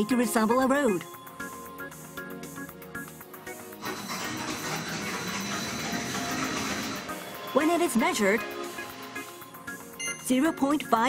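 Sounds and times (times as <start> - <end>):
background music: 0.0 - 11.0
tire spinning on wet metal: 3.8 - 9.0.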